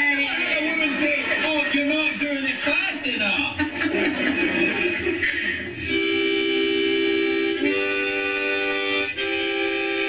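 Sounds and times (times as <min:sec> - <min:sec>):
harmonica held chord: 0:05.7 - 0:10.0.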